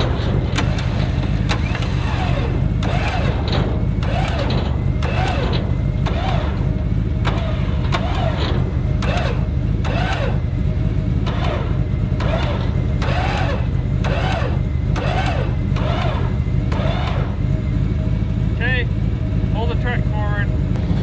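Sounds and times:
truck engine running: 0:00.0 - 0:21.0.

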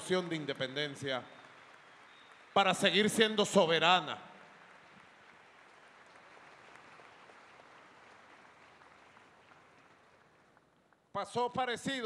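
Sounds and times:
faint audience applause: 0:00.0 - 0:11.1.

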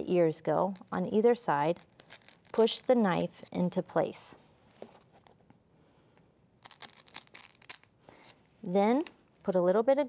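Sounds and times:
knife crunching into styrofoam: 0:06.6 - 0:07.9.

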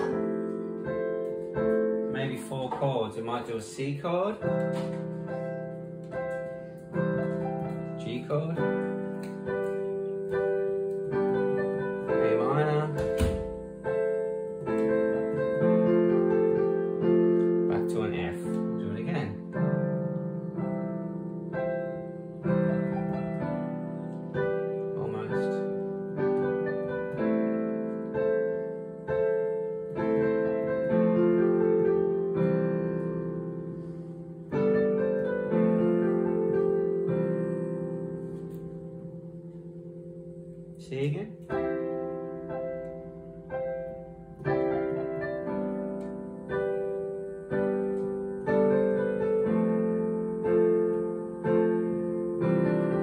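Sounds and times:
digital piano playing: 0:00.0 - 0:53.0.

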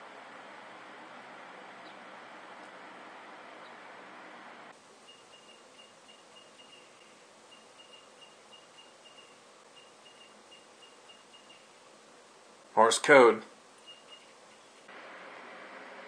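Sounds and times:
soft hiss: 0:00.0 - 0:16.0.

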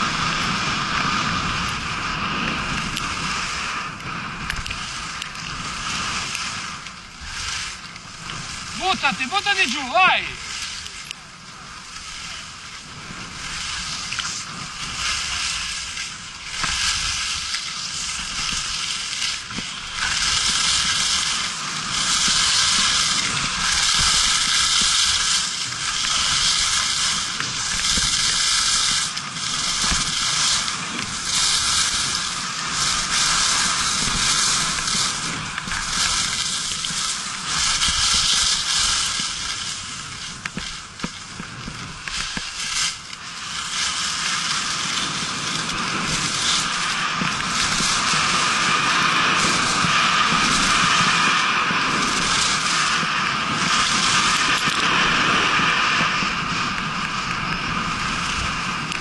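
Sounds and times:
skis scraping over snow: 0:00.0 - 0:59.0.

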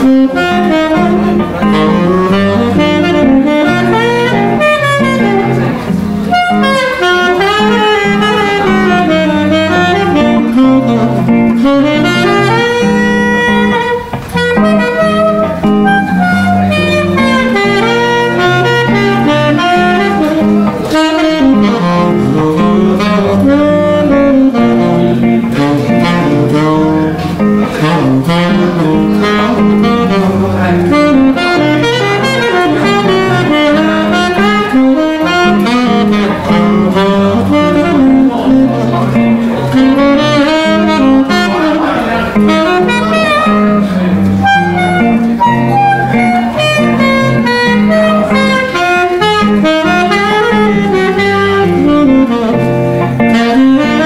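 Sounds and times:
bass notes: 0:00.0 - 0:54.0
jazz guitar chords: 0:00.0 - 0:54.0
tenor saxophone jazz melody: 0:00.0 - 0:54.0.

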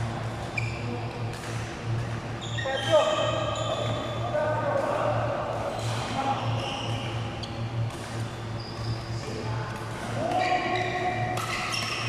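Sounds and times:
voices in reverberant hall: 0:00.0 - 0:12.0
sports shoes squeaking on court: 0:00.4 - 0:01.7, 0:02.3 - 0:04.4, 0:05.7 - 0:09.4, 0:10.2 - 0:12.0
sharp gliding shoe squeal: 0:00.5 - 0:00.9, 0:02.4 - 0:04.2, 0:05.8 - 0:09.2, 0:10.2 - 0:12.0.

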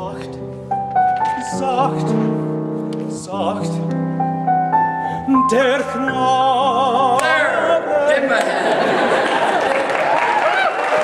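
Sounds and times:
piano chords: 0:00.0 - 0:10.0
person singing with vibrato: 0:01.2 - 0:04.0, 0:04.8 - 0:08.6.

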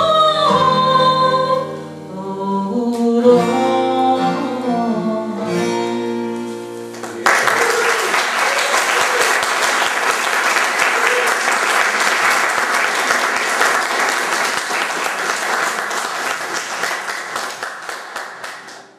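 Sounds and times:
audience applauding: 0:06.9 - 0:18.9.

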